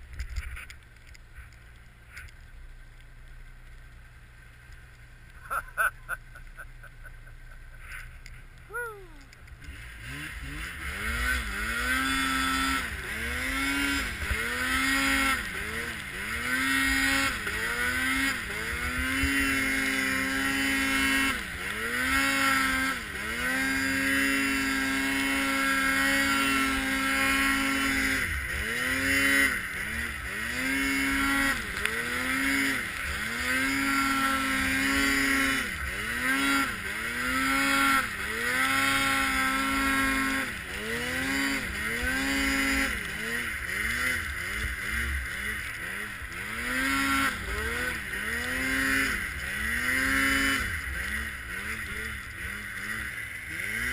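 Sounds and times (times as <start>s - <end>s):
snowmobile engine revving: 5.3s - 53.9s.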